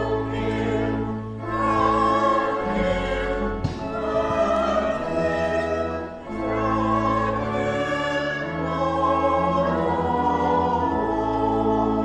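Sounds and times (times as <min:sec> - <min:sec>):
church choir singing: 0:00.0 - 0:12.0
organ accompaniment: 0:00.0 - 0:12.0.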